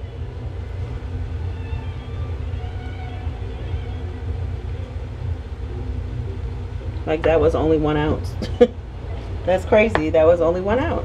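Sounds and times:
low machinery rumble: 0.0s - 11.0s.

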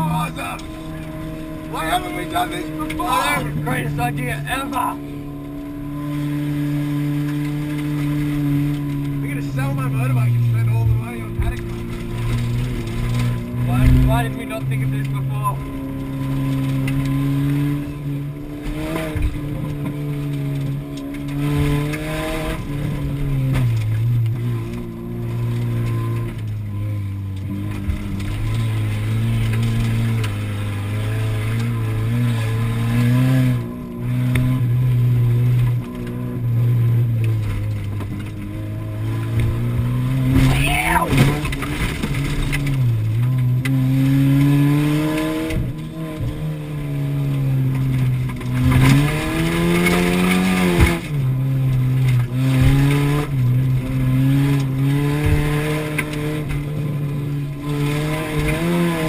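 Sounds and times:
car engine revving: 0.0s - 59.0s
tyres on gravel: 37.0s - 59.0s.

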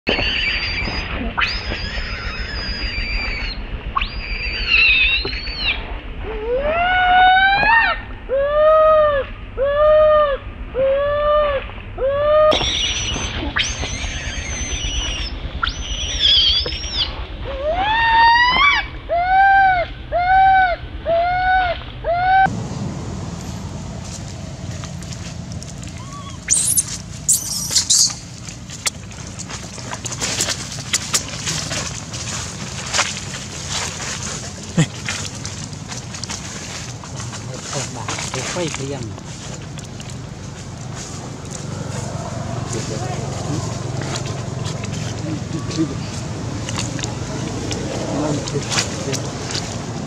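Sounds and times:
baby monkey screaming: 0.1s - 22.5s, 26.0s - 28.3s
steady outdoor hiss: 0.3s - 50.0s.

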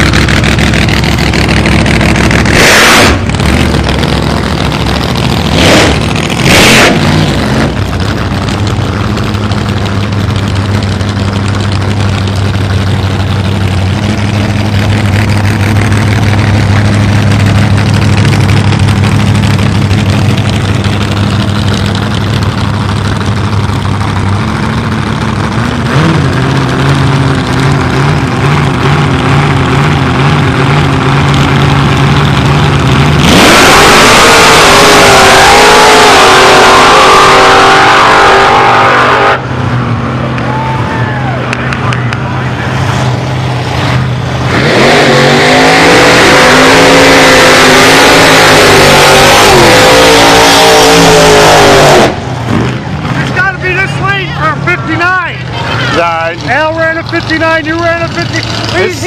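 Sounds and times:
drag car engine idling: 0.0s - 2.6s, 3.2s - 33.3s, 52.2s - 59.0s
drag car engine at full throttle: 0.0s - 59.0s.

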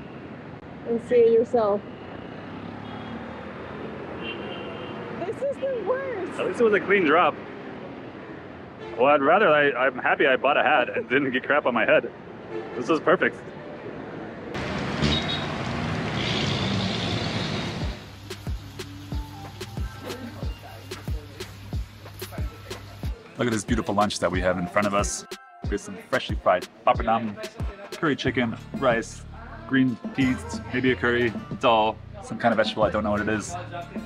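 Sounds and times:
city traffic rumble: 0.0s - 27.4s.

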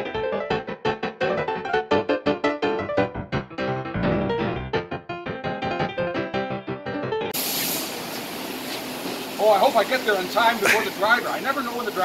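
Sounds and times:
piano music: 0.0s - 7.4s
factory background hiss: 7.4s - 12.0s.

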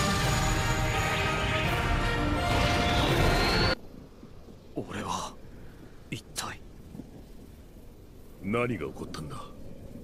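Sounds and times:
soundtrack music: 0.0s - 3.8s.

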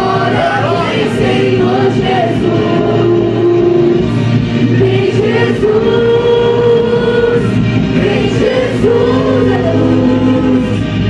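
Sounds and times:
young voices singing worship song: 0.0s - 11.0s.

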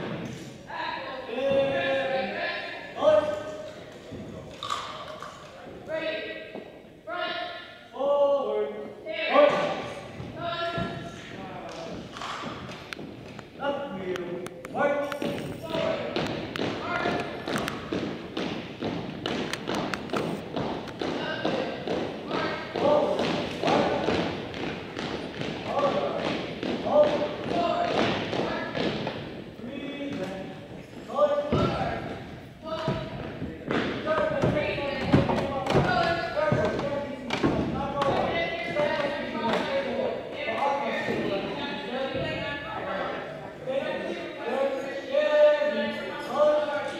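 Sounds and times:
voices: 20.9s - 46.9s
thuds on hardwood floor: 31.5s - 32.1s, 32.7s - 39.7s.

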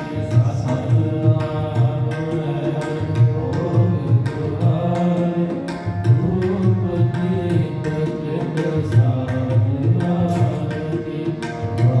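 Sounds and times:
harmonium chords: 0.0s - 12.0s
tabla beat: 0.0s - 12.0s.

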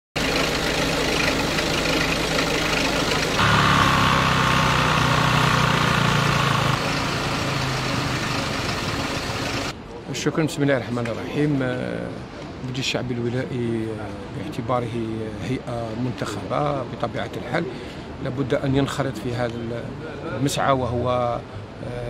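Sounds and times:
vehicle engines idling: 0.2s - 9.7s.

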